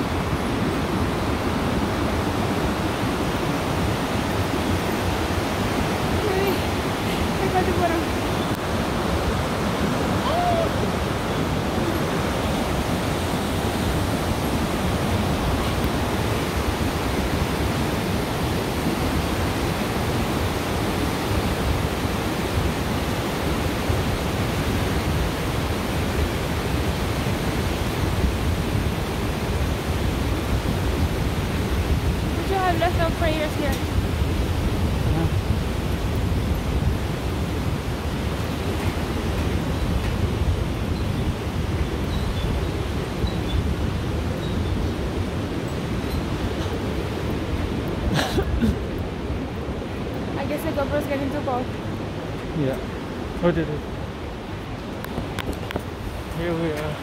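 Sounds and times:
river water rushing: 0.0 - 57.0.

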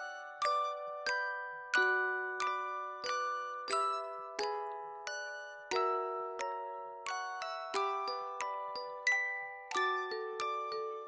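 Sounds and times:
bell-like chiming lullaby: 0.0 - 11.0.

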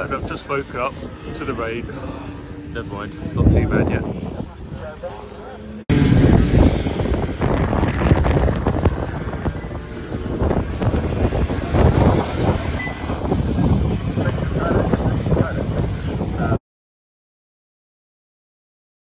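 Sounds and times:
racing motorcycles passing: 0.0 - 16.6
wind buffeting microphone: 0.0 - 16.6.

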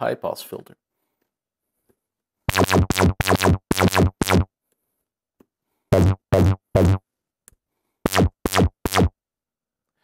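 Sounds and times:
low plucked synthesizer notes: 2.5 - 4.5.

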